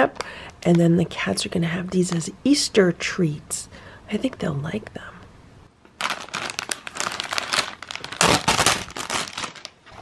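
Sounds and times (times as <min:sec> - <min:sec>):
plastic bag crinkling: 0:05.9 - 0:10.0.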